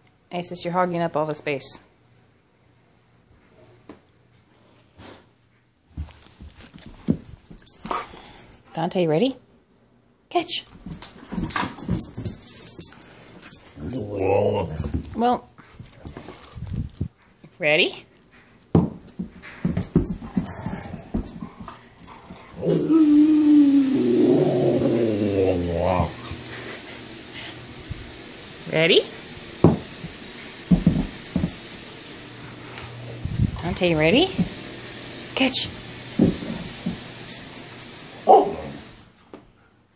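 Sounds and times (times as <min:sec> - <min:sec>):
dogs scrambling: 0:06.1 - 0:08.8, 0:10.7 - 0:17.1, 0:18.2 - 0:28.6, 0:33.1 - 0:39.1
dog woofing: 0:13.7 - 0:15.1, 0:22.4 - 0:26.6, 0:38.2 - 0:38.9
dog yipping: 0:38.2 - 0:38.7.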